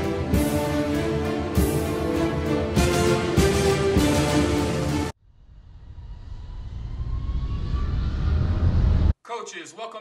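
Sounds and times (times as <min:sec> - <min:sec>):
faint rising whine: 0:05.2 - 0:09.1.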